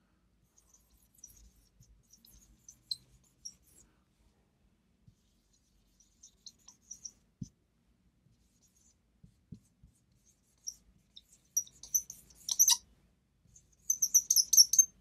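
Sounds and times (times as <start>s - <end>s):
marker squeaking on a whiteboard: 0.6s - 3.8s, 5.2s - 7.2s, 9.6s - 12.8s, 13.5s - 15.0s.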